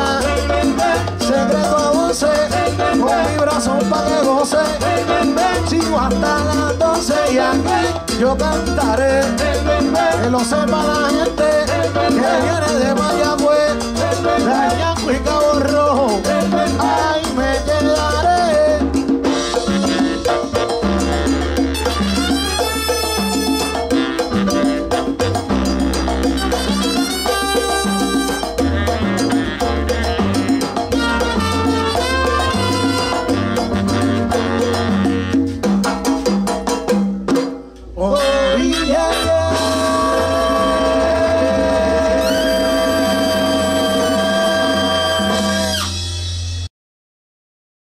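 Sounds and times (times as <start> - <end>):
salsa band with percussion: 0.0 - 46.7.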